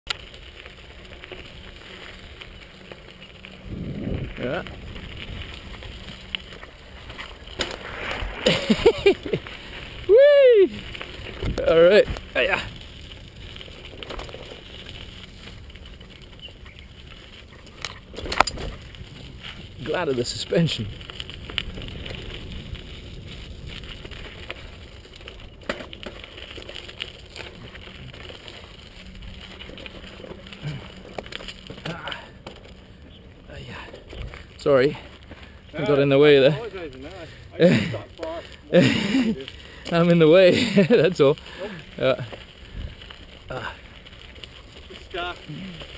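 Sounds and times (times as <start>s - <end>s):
bike rumbling on rocky trail: 0.1s - 45.9s
bike knocking on rocks: 17.5s - 19.0s, 25.3s - 28.8s.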